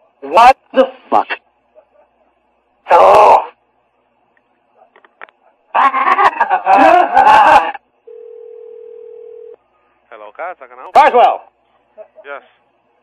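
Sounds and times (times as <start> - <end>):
telephone line tone: 8.1 - 9.6.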